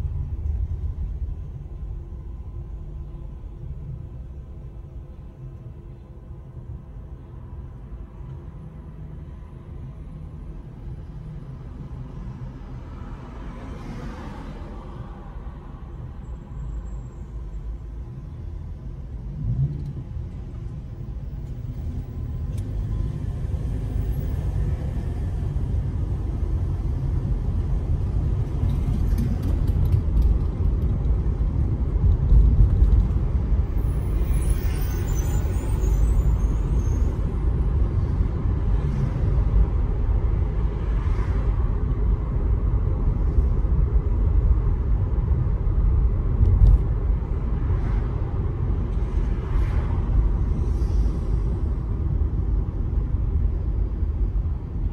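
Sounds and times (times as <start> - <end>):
car engine and road rumble: 0.0 - 54.9.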